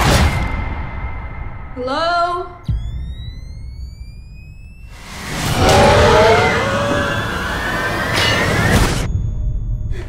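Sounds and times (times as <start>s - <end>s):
thin rising tone: 2.8s - 8.7s
screeching bending tones: 2.8s - 9.1s
loud rush of noise: 5.1s - 9.0s.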